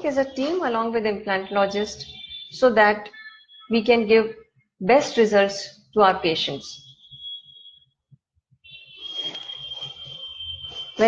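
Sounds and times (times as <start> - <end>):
high-pitched whine: 8.8 - 11.0.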